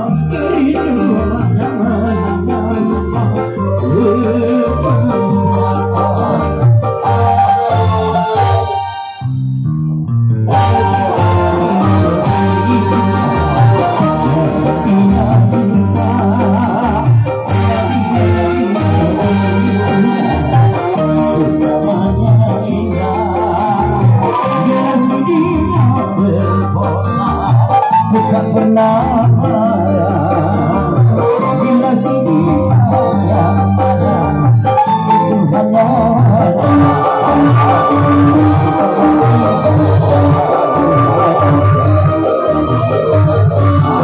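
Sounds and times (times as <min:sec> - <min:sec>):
person singing oh: 0:00.0 - 0:06.6, 0:10.5 - 0:44.0
live band playing instrumental: 0:00.0 - 0:09.6, 0:10.4 - 0:44.0
electric guitar: 0:00.0 - 0:44.0
walking bass line: 0:00.0 - 0:44.0.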